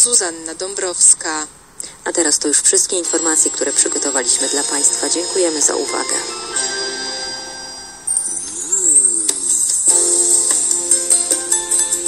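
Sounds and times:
jingle music phrase: 0:03.4 - 0:09.1
bell-like tones: 0:03.4 - 0:12.0.

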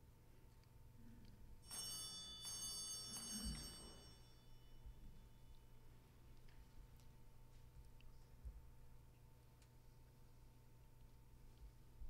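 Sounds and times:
small bell ringing: 0:01.6 - 0:05.5.

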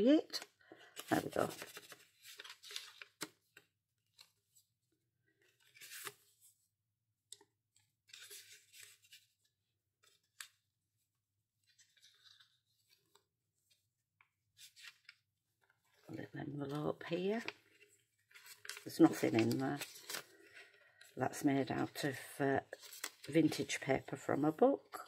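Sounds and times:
paper rustling and tapping: 0:00.4 - 0:04.3, 0:17.2 - 0:20.7.

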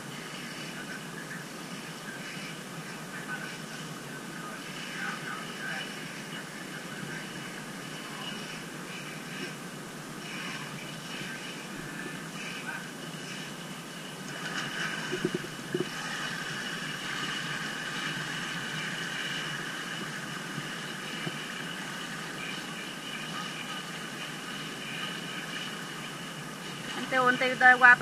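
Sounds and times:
mechanical hum with whining tones: 0:00.0 - 0:28.0.

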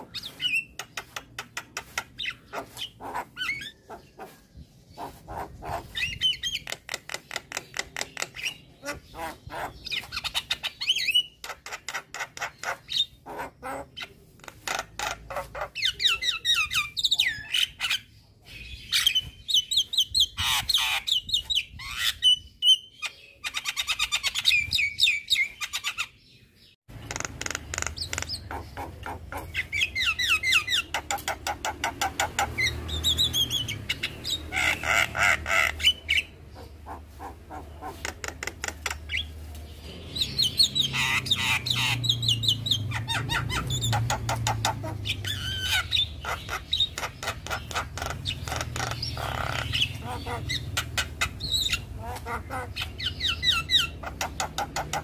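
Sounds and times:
myna bird chattering song: 0:00.0 - 0:55.0.

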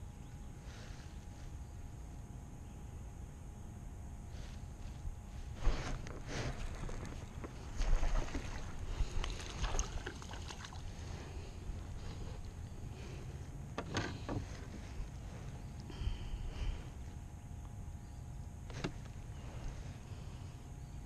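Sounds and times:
water around boat: 0:04.6 - 0:17.2
wind rumbling on microphone: 0:04.7 - 0:17.1.

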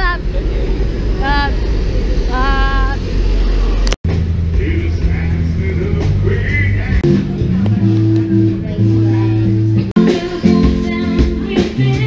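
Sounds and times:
bass guitar notes: 0:00.0 - 0:12.0
live band playing: 0:04.1 - 0:12.0.

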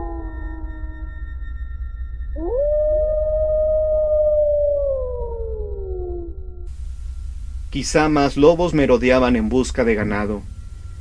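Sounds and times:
higher wolf howl: 0:00.0 - 0:01.4, 0:02.3 - 0:06.7
wolf howling: 0:00.0 - 0:01.4, 0:02.4 - 0:06.7
steady low rumble: 0:00.0 - 0:11.0.

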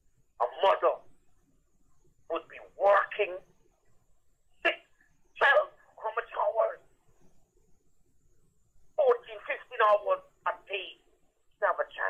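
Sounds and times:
person talking over telephone: 0:00.4 - 0:01.0, 0:02.3 - 0:03.4, 0:05.4 - 0:06.8, 0:09.0 - 0:11.0, 0:11.6 - 0:12.0.

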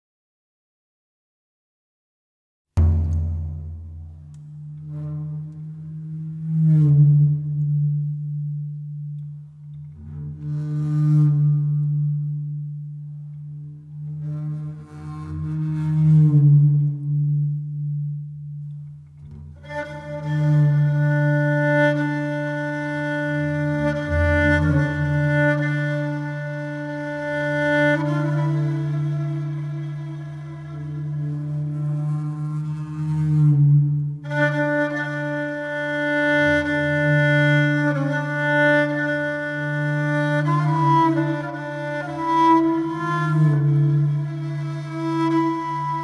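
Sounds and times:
bowed fiddle note: 0:02.8 - 0:46.0.

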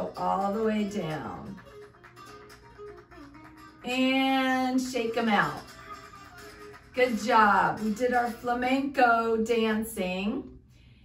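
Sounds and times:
flamenco guitar music: 0:00.0 - 0:08.5.

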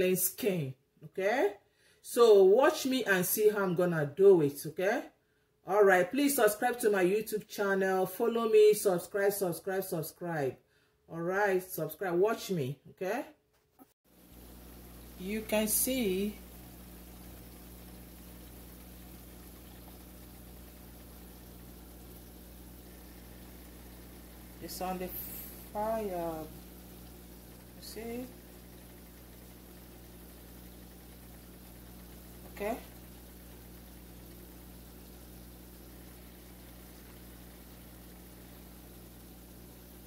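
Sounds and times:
faint steady hiss: 0:14.1 - 0:40.0
oil sizzling in a pan: 0:14.1 - 0:40.0
low even hum: 0:14.2 - 0:40.0.

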